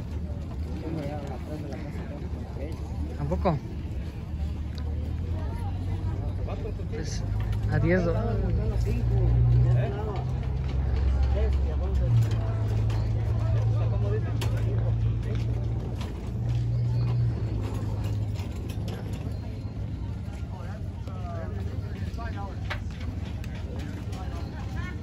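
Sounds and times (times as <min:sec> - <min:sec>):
outdoor crowd voices: 0:00.0 - 0:25.0.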